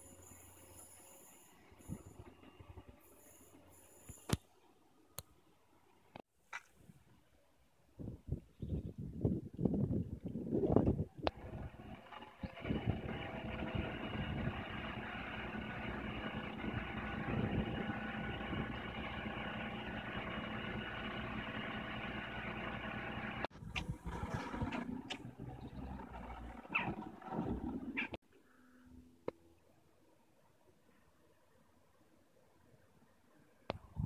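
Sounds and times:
low irregular rumbling: 11.3s - 28.2s
bus engine idling: 11.4s - 28.2s.

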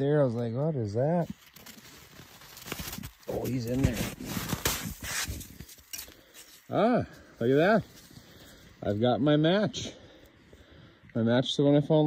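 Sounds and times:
hand crunching and scraping snow: 0.9s - 8.2s.

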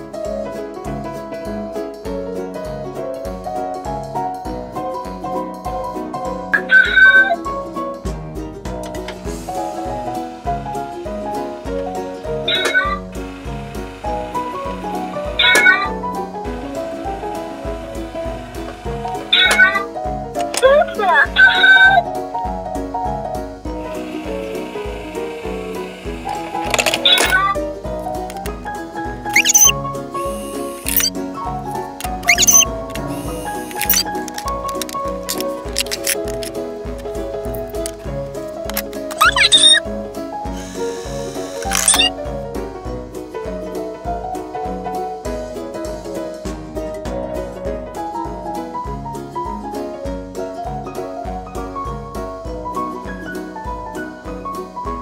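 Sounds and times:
piano music with steady beat: 0.0s - 55.0s
short electronic meow: 12.5s - 13.1s, 15.4s - 15.9s, 29.4s - 29.7s, 39.2s - 39.8s, 40.8s - 42.1s.

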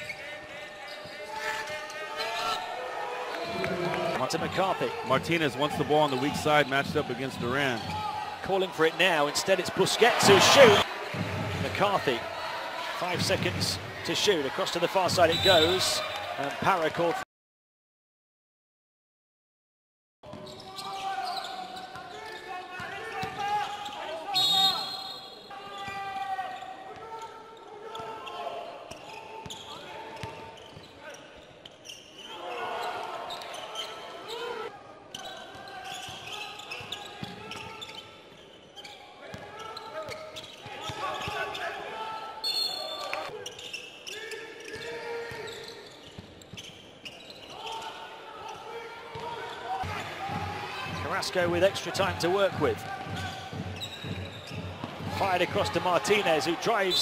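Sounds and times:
players and spectators calling: 0.0s - 17.2s, 20.4s - 31.4s, 32.1s - 38.3s, 38.9s - 46.0s, 46.6s - 57.0s
basketball bouncing on court: 11.0s - 11.8s, 49.1s - 55.7s.

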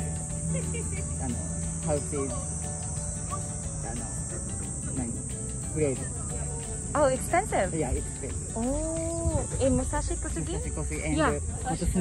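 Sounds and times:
insects chorus: 0.0s - 12.0s.

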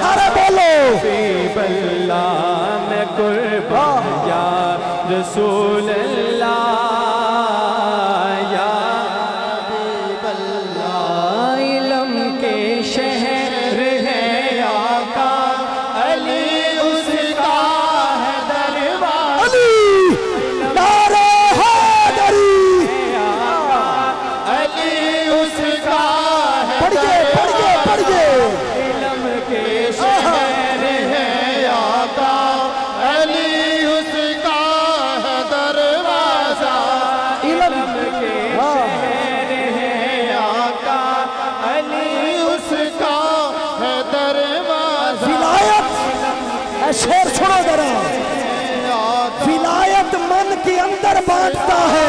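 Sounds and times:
men singing through sound system: 0.0s - 52.0s.

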